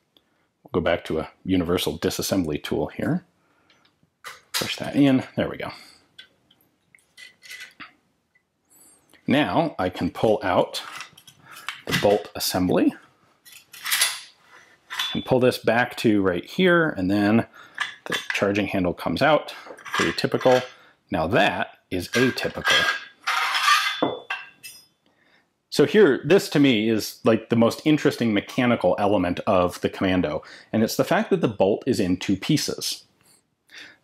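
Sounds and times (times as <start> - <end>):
metal scrape: 10.8 - 12.3, 13.5 - 15.3, 19.8 - 20.8, 22.0 - 24.9
light metallic clicks and clinks: 13.4 - 15.3.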